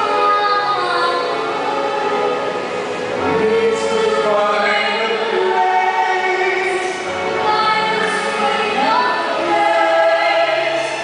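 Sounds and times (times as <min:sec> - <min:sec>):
man and woman singing duet: 0:00.0 - 0:02.4, 0:03.1 - 0:11.0.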